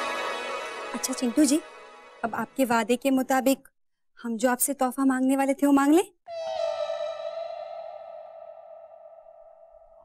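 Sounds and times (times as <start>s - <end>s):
sustained synthesized tone: 6.3s - 10.0s.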